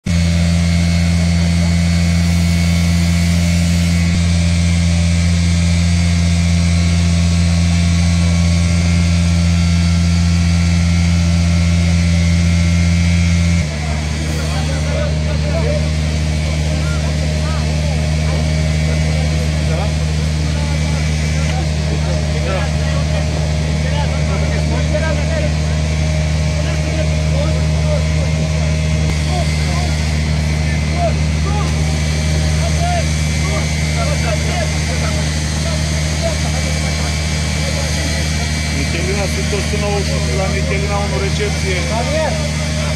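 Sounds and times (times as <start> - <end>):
small engine running: 0.0 - 42.9
faint voices: 13.6 - 42.9.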